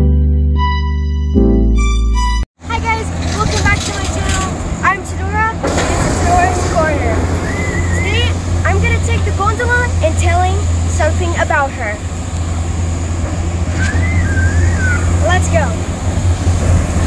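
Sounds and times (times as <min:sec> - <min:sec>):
low outdoor rumble: 0:02.6 - 0:17.0
girl's voice: 0:02.7 - 0:07.2, 0:08.0 - 0:12.0, 0:15.2 - 0:15.8.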